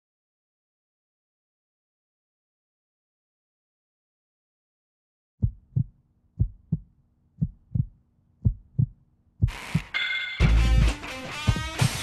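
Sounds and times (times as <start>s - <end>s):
heartbeat thumps: 5.4s - 11.8s.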